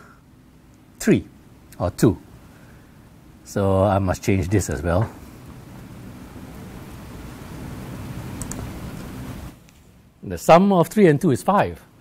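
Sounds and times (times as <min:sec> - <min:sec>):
steady rustling noise: 0:04.4 - 0:10.3
laptop keyboard keystrokes: 0:08.4 - 0:08.7.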